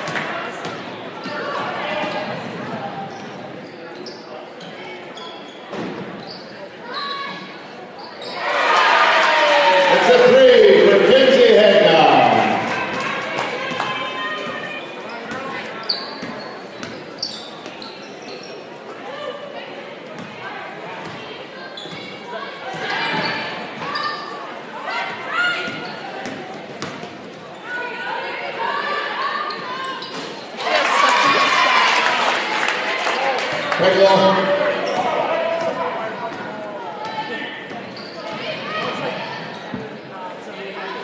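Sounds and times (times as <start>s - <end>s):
voices echoing in hall: 0.0s - 41.0s
shoe squeaks and knocks: 5.2s - 7.4s, 15.8s - 18.5s.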